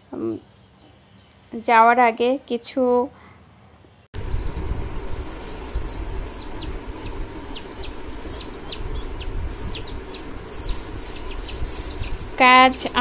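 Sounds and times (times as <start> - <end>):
baby chicks peeping: 4.2 - 13.0.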